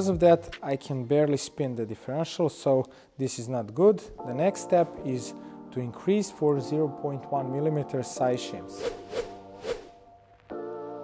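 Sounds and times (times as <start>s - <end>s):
background music: 0.0s - 11.0s
swoosh effects: 8.8s - 10.0s.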